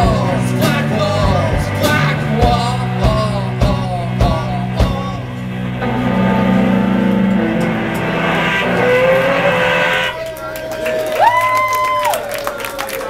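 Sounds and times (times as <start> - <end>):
electric guitars ringing: 0.0 - 11.9
guitar feedback tone: 0.0 - 11.9
drums: 0.0 - 12.7.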